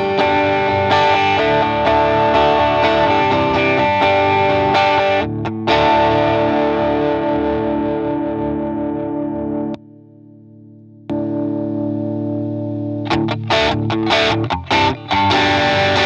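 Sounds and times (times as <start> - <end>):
overdriven electric guitar chord: 0.0 - 16.0.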